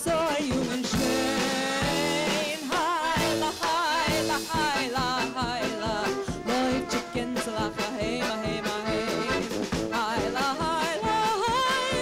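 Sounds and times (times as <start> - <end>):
woman singing with vibrato: 0.0 - 12.0
trumpet: 0.8 - 12.0
fiddle: 1.1 - 12.0.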